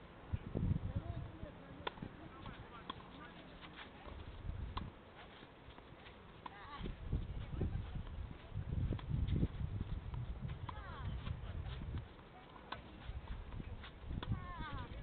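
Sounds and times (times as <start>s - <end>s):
tennis ball struck with rackets: 1.8s - 5.0s, 10.5s - 14.4s.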